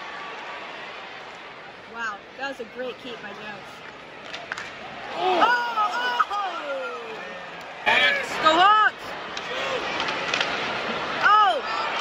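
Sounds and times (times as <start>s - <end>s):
crowd murmur: 1.7s - 12.0s.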